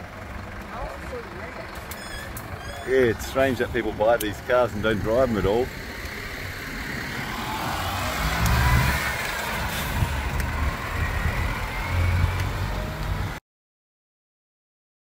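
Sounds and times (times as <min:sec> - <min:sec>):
vehicle engine running: 0:00.0 - 0:13.4.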